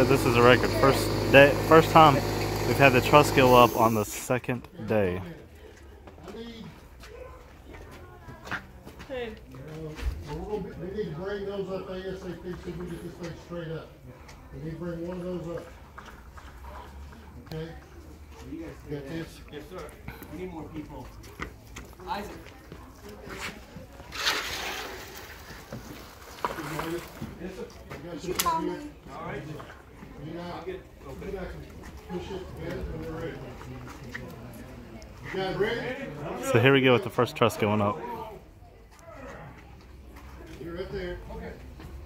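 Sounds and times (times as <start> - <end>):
work crew calling out: 0.0 - 5.2
work crew talking and calling: 0.0 - 42.0.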